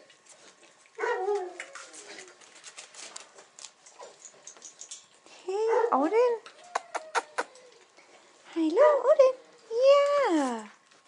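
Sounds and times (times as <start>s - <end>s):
puppy whining: 6.5s - 8.0s.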